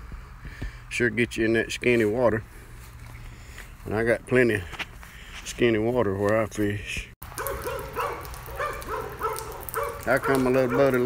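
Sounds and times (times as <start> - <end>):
dog yipping: 7.4 - 11.0.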